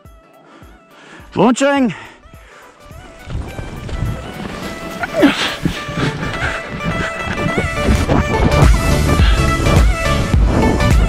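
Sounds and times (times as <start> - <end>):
background music: 0.0 - 11.0
running footsteps: 2.3 - 10.6
wind on microphone: 2.9 - 11.0
person laughing: 5.0 - 9.4.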